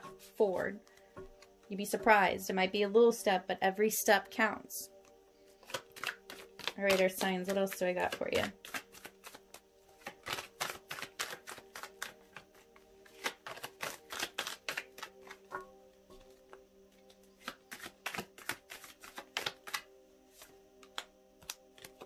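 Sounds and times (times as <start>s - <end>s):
background music with held notes: 0.0s - 22.0s
cards being shuffled: 5.6s - 15.5s, 16.2s - 22.0s.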